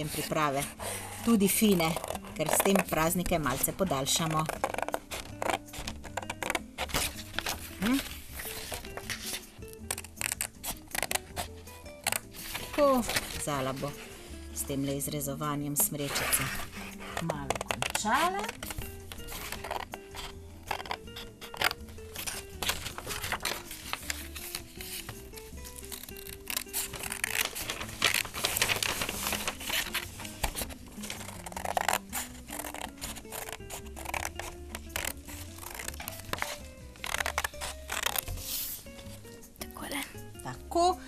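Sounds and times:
scissors snipping paper: 0.0 - 14.1, 15.6 - 38.9
paper rustling: 0.0 - 39.4
soft background music: 0.0 - 41.0.

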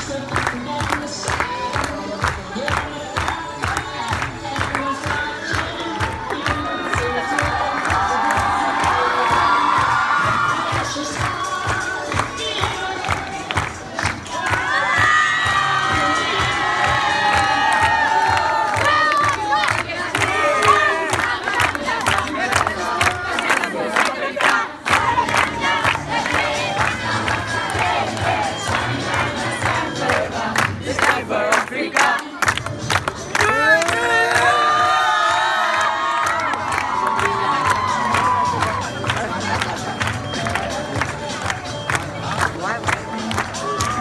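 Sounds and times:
children cheering and shouting: 5.2 - 13.5, 14.4 - 19.6, 20.2 - 21.2, 33.4 - 39.0.

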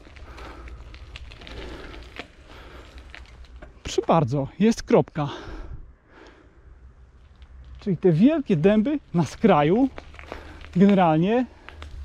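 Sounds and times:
tyres rolling over grit: 0.0 - 4.2, 8.1 - 12.0.

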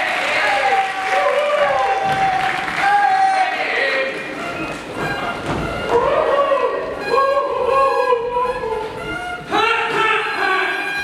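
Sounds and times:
audience applause: 0.0 - 5.0
pitched squeals and sliding notes: 4.2 - 11.0.

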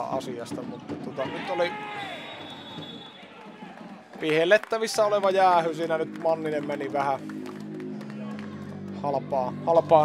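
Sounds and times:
faint arena ambience: 0.0 - 10.0
referee's whistle: 1.9 - 3.3.

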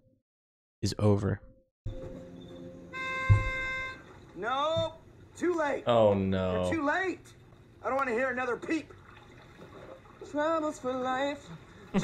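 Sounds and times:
held keyboard note: 1.9 - 4.2
short low thump: 3.2 - 3.8.

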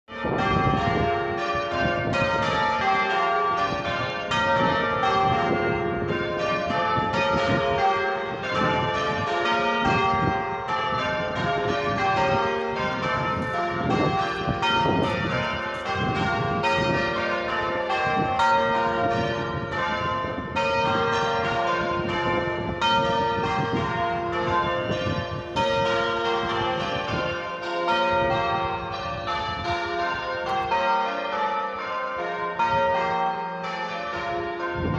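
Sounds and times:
church bells change ringing: 0.1 - 34.9.

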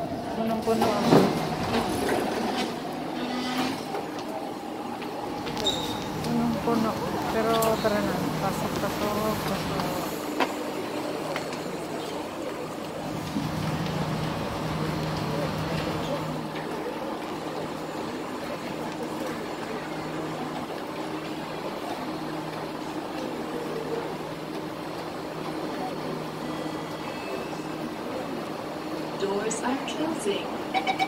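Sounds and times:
murmured passenger chatter: 0.0 - 30.7
train hum and rumble: 0.0 - 31.0.

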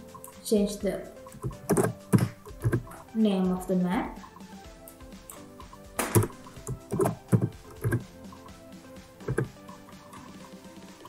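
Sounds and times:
computer keyboard keystrokes: 1.4 - 2.9, 6.0 - 8.0, 9.2 - 9.5.

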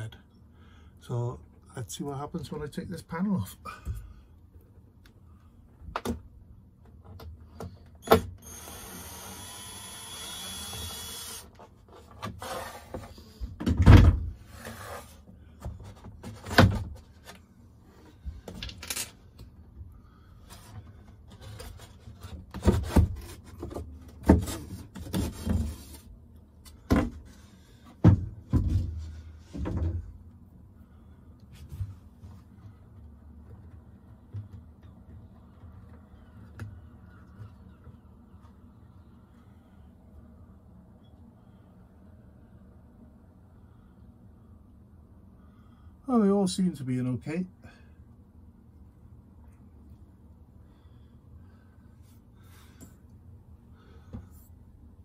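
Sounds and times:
cordless drill running: 8.0 - 11.5
wooden panel knocks and clunks: 28.0 - 30.1.

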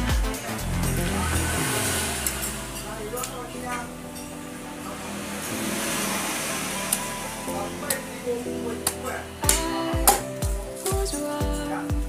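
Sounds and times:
steady rushing noise: 0.0 - 9.6.

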